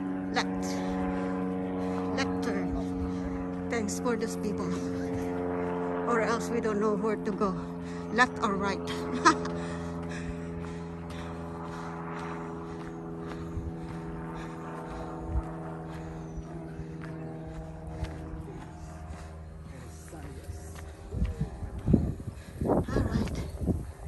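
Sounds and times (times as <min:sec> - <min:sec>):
engine drone: 0:00.0 - 0:24.0
footsteps on dirt trail: 0:00.0 - 0:24.0.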